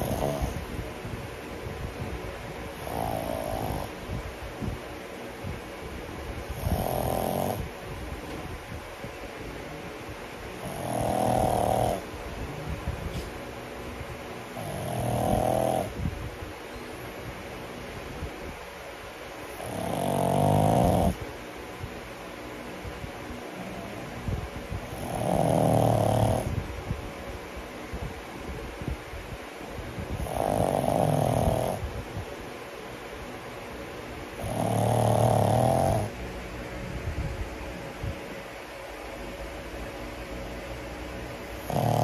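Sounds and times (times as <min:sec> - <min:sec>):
dog snoring loudly: 0:00.0 - 0:00.8, 0:02.7 - 0:04.2, 0:06.4 - 0:07.7, 0:10.6 - 0:12.2, 0:14.5 - 0:16.1, 0:19.4 - 0:21.2, 0:24.8 - 0:26.6, 0:30.1 - 0:31.9, 0:34.3 - 0:36.2, 0:41.4 - 0:42.0
snuffly dog breathing: 0:00.0 - 0:00.8, 0:02.7 - 0:04.8, 0:06.4 - 0:07.7, 0:10.6 - 0:12.2, 0:24.7 - 0:26.6, 0:34.4 - 0:36.2, 0:41.4 - 0:42.0.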